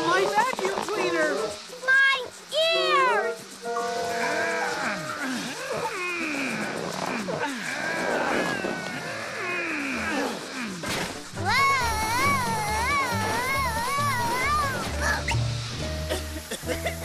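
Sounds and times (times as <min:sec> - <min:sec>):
music: 0:00.0 - 0:05.4, 0:10.5 - 0:17.0
steady hiss: 0:00.0 - 0:17.0
cartoon monster's strangled cries: 0:03.9 - 0:15.2.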